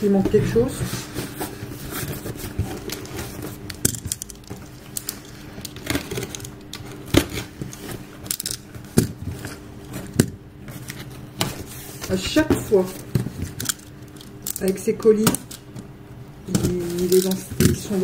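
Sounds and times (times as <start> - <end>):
packaging rustling and crinkling: 0.8 - 14.5.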